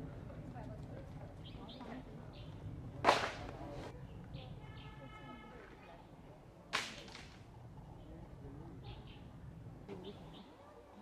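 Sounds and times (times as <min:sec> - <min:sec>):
bamboo stalks crashing down: 0:03.0 - 0:03.6, 0:06.7 - 0:07.4.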